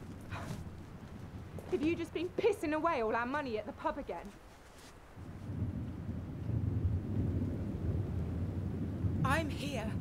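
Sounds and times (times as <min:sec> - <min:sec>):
low deep rumble: 0:05.3 - 0:10.0.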